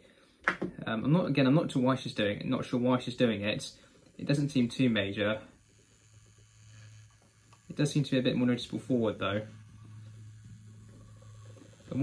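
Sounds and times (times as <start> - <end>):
model train motor humming: 2.7 - 12.0.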